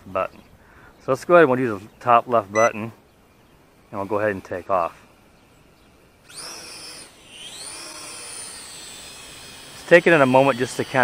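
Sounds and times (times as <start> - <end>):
toy quadcopter motors whining: 5.6 - 11.0.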